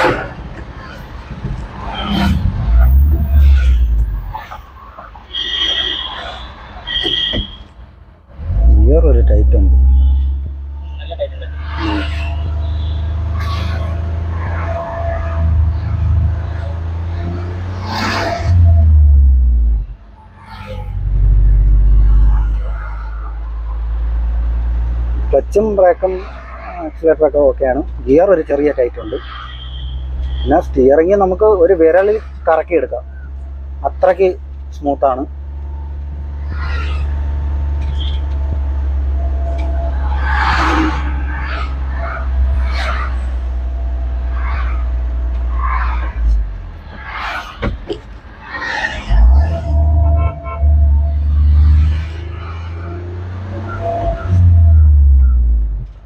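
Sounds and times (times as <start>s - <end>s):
truck engine low drone: 7.9s - 56.0s.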